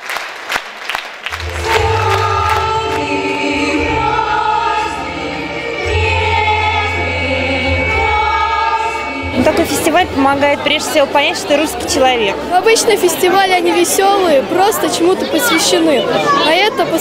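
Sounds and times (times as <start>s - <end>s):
low accompaniment: 1.3s - 12.6s
children's choir singing: 1.4s - 12.0s.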